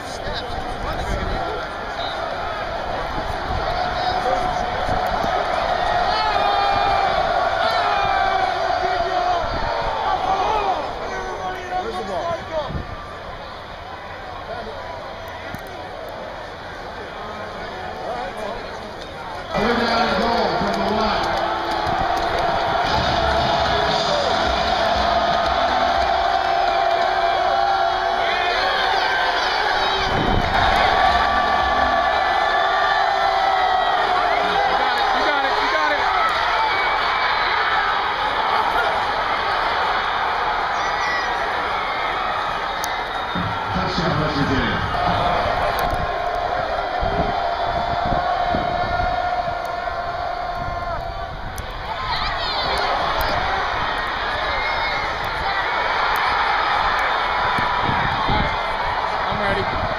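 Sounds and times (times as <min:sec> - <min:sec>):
crowd cheering and shouting: 0:00.0 - 0:59.9
crowd murmur: 0:00.0 - 0:59.9.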